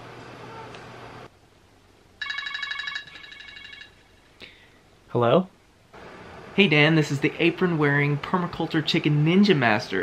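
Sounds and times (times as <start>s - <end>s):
phone ringtone trilling: 2.2s - 4.3s.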